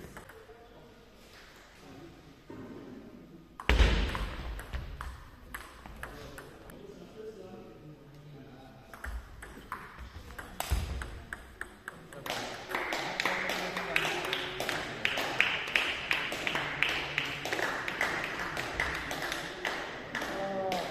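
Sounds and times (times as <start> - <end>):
voices in a hall: 0.0 - 20.9
table tennis ball clicking: 8.9 - 12.4.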